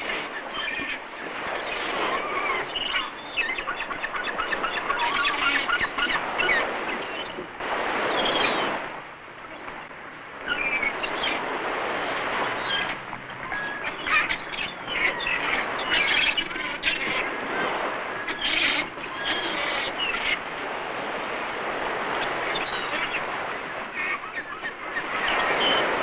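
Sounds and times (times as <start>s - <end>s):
birds chirping: 0.0s - 26.0s
steady rushing noise: 0.0s - 26.0s.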